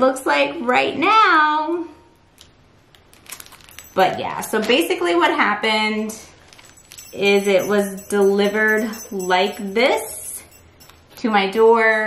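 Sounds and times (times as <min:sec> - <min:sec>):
plastic zip bag crinkling: 0:03.0 - 0:03.8.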